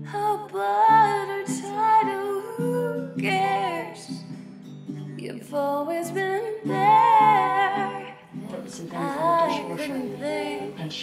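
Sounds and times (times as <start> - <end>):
musical accompaniment: 1.4 - 11.0
person humming wordless vocal: 8.4 - 11.0.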